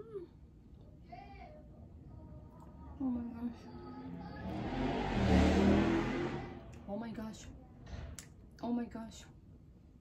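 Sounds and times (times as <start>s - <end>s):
rushing noise: 4.4s - 6.8s.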